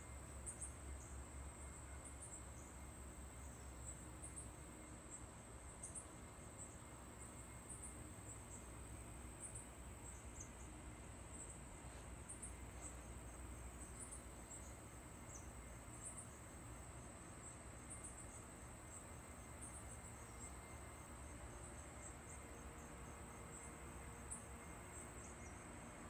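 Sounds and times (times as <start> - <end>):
insects chirping: 0.0 - 26.0
low background hum: 0.0 - 26.0.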